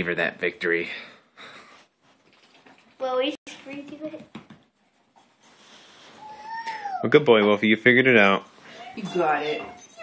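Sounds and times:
dog whining: 0:06.0 - 0:07.1, 0:08.7 - 0:10.0.

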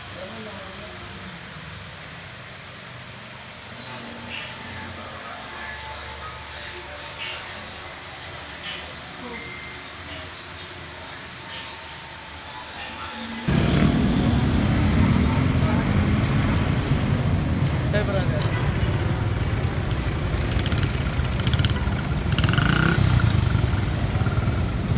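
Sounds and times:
traffic: 0:00.0 - 0:24.9
people's voices: 0:03.8 - 0:22.3
motorbikes passing: 0:13.1 - 0:24.9.

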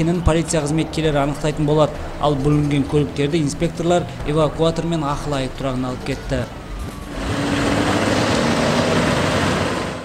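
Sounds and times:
street noise: 0:00.0 - 0:10.0
truck engine: 0:00.0 - 0:10.0.

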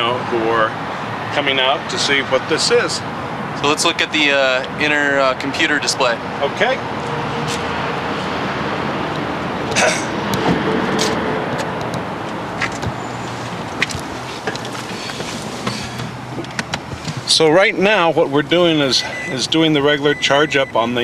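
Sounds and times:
person climbing into car seat: 0:09.7 - 0:17.3.

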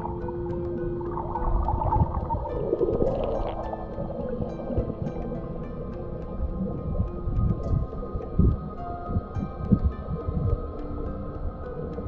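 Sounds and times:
background music: 0:00.0 - 0:12.0
underwater rumbling and gurgling: 0:00.0 - 0:12.0
water swirl: 0:00.0 - 0:12.0.

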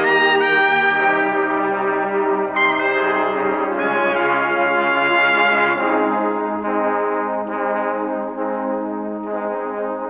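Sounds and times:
trumpets playing sustained chord: 0:00.0 - 0:10.0.

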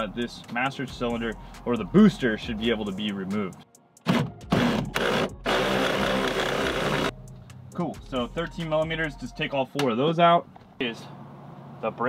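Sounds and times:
power tool loosening nut: 0:04.1 - 0:07.1.

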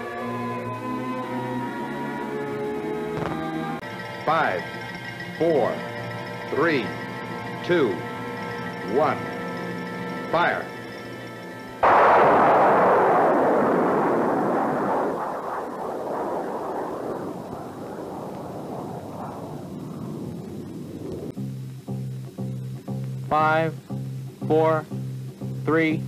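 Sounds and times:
rocket launch roar: 0:11.8 - 0:21.4.

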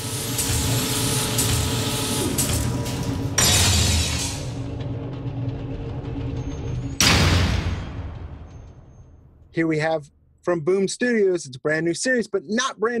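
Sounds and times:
low mechanical drone: 0:00.0 - 0:09.2
sharp metallic hits: 0:02.7 - 0:09.5.

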